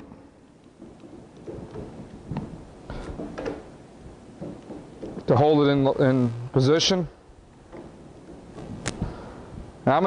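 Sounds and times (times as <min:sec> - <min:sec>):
clamps knocking and scraping: 0:00.8 - 0:05.5.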